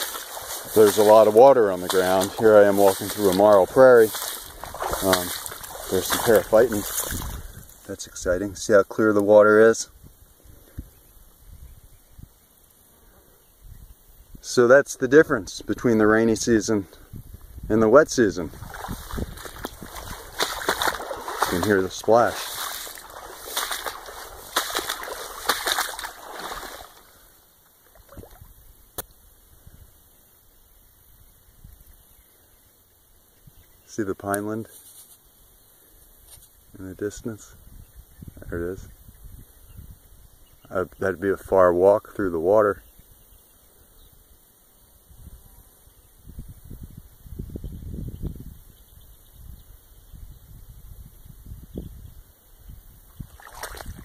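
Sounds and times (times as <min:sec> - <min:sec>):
footsteps splashing through water: 0:00.0 - 0:07.9, 0:18.4 - 0:28.5, 0:53.2 - 0:54.0.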